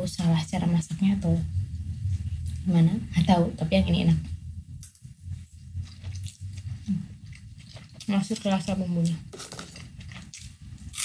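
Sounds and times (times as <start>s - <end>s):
person chewing noodles: 5.8s - 8.1s, 9.3s - 11.0s.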